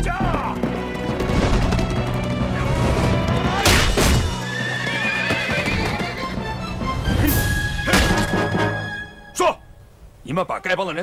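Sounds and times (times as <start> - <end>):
galloping hooves: 0.0 - 3.6, 4.3 - 7.1
dramatic film score: 0.0 - 9.8
horse whinnying: 3.4 - 6.5.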